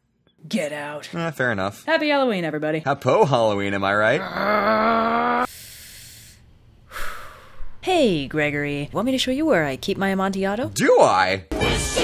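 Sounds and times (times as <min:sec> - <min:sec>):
person exhaling: 0:04.2 - 0:07.8
sharp intake of breath: 0:05.5 - 0:07.8.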